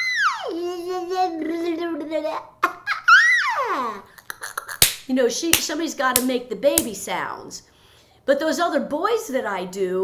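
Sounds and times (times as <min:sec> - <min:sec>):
woman imitating baby noises: 0:00.0 - 0:04.8.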